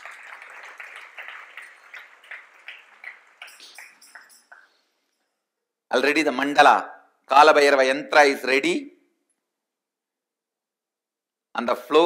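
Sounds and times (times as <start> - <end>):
audience clapping: 0.0 - 4.8.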